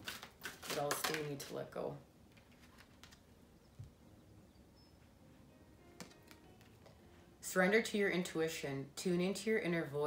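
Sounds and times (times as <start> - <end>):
cards clicking when handled: 6.0 - 7.0.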